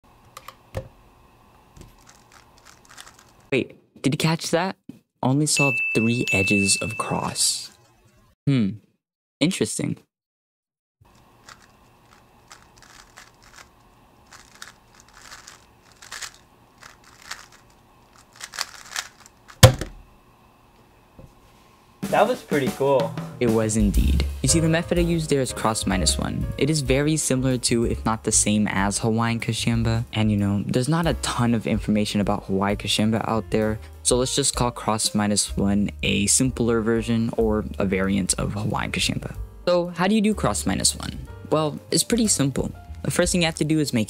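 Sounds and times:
puzzle cube clicking: 2.0 - 3.4, 11.4 - 13.7, 14.3 - 19.9
puzzle cube knocking: 18.4 - 20.0
cube thumping down on mat: 19.6 - 20.0.

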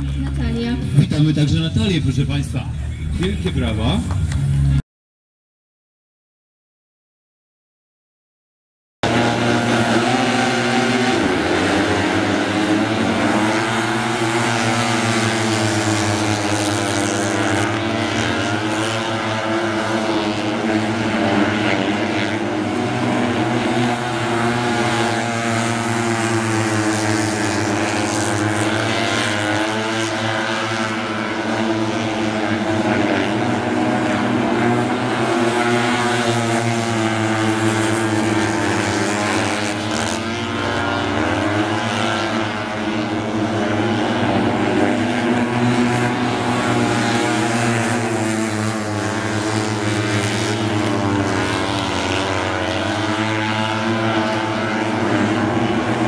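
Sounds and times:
motorbike engines racing: 0.0 - 4.8, 9.0 - 56.0.

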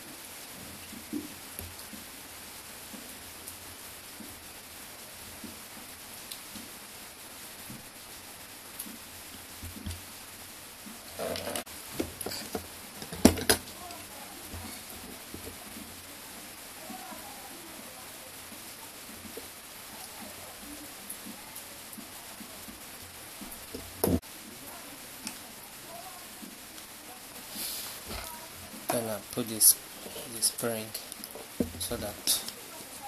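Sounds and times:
steady hiss: 0.0 - 33.0.

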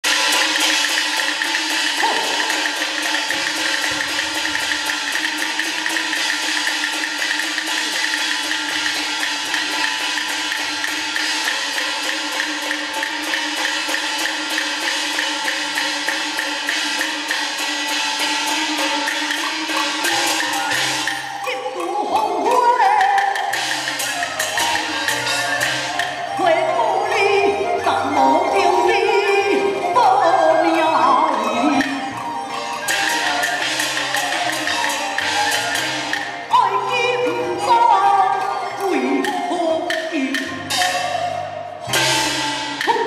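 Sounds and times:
drums and cymbals struck fast: 0.0 - 26.6, 30.8 - 37.4, 39.9 - 43.0.

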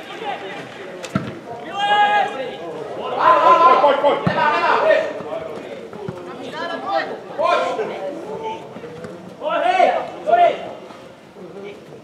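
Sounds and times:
men shouting: 1.6 - 5.2.

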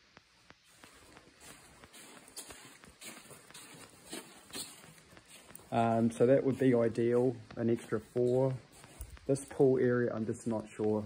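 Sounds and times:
footsteps on carpet: 0.1 - 11.0.

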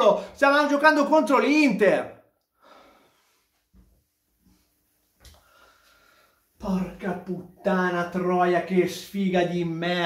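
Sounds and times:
man breathing through nose: 2.5 - 3.5, 5.3 - 6.5.

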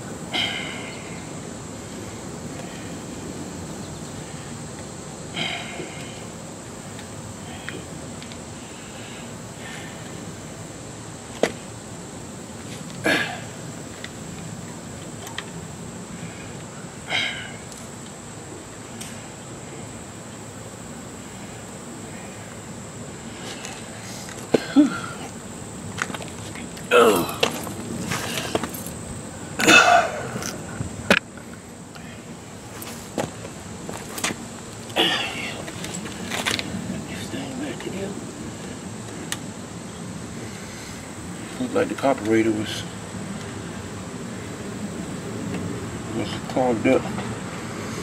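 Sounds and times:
steady low hum: 0.0 - 48.0
man coughing: 13.0 - 13.5, 24.5 - 25.3, 26.9 - 27.5, 29.6 - 30.4, 35.0 - 35.6.

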